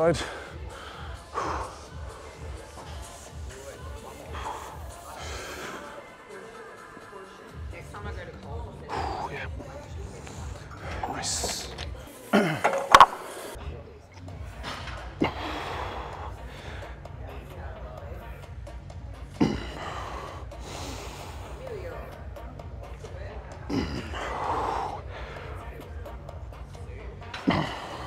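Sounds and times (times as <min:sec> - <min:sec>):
man breathing and grunting: 0:00.0 - 0:06.0, 0:08.8 - 0:13.6, 0:14.5 - 0:17.1, 0:23.6 - 0:25.9, 0:27.4 - 0:28.0
background music with beat: 0:00.0 - 0:28.0.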